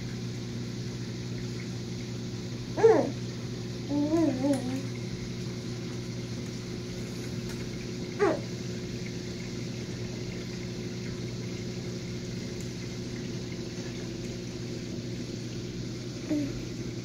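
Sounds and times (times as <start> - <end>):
aquarium equipment humming: 0.0 - 17.0
faint water hiss: 0.0 - 17.0.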